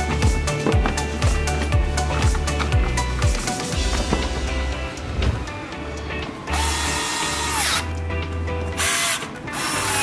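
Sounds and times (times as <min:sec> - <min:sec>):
power screwdriver whine: 0:06.5 - 0:07.9, 0:08.8 - 0:10.0.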